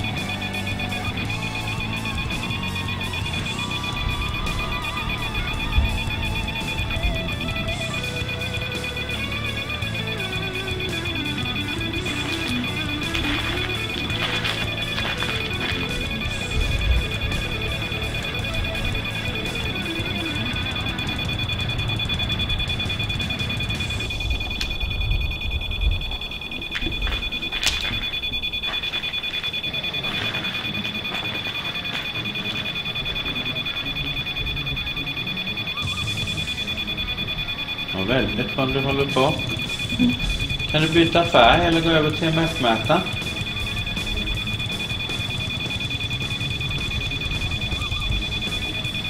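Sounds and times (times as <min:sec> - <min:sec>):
fragments of broadcast music: 0:00.0 - 0:49.0
steady high-pitched tones: 0:00.0 - 0:49.0
choppy radio static: 0:07.9 - 0:24.8.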